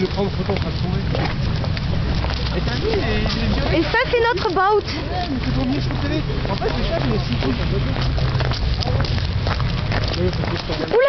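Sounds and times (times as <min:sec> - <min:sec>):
boat diesel engine rumbling: 0:00.0 - 0:10.9
faint voices: 0:00.0 - 0:11.0.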